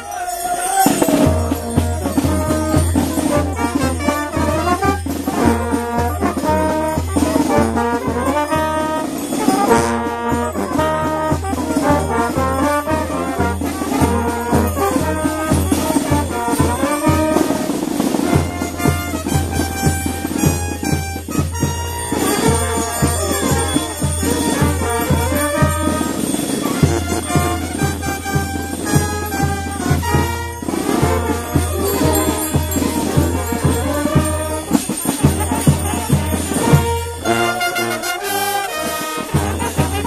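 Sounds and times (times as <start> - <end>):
brass band playing lively tune: 0.0 - 40.0.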